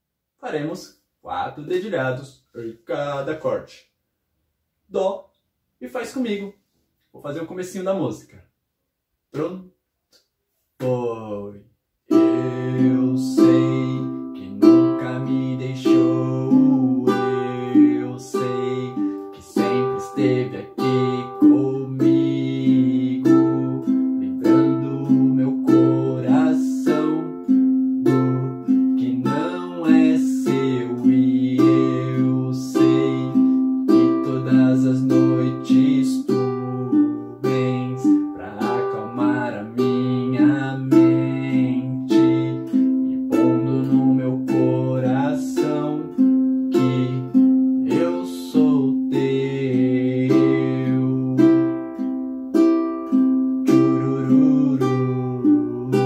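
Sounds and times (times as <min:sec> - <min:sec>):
man singing: 0:10.8 - 0:27.4, 0:28.1 - 0:51.9, 0:53.6 - 0:56.0
ukulele fingerpicking: 0:12.1 - 0:56.0.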